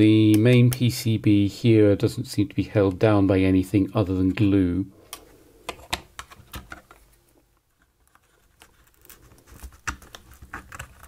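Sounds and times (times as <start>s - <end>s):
small tool prying and scraping: 8.0s - 11.0s.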